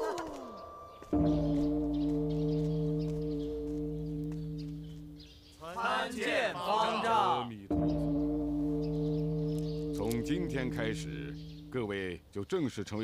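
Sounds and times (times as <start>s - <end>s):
large temple bell ringing: 0.0s - 5.2s, 7.7s - 11.8s.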